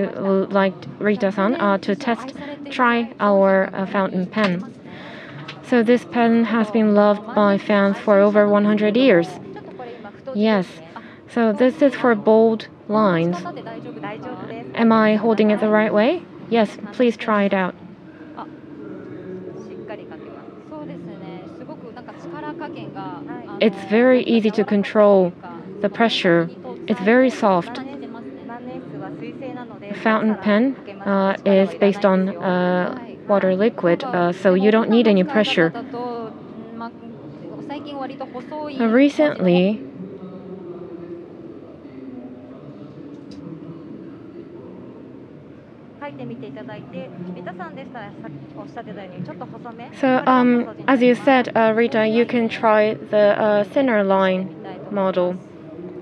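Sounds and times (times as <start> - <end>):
people talking: 0.0 - 45.1, 46.0 - 56.0
steady hall hum: 0.0 - 56.0.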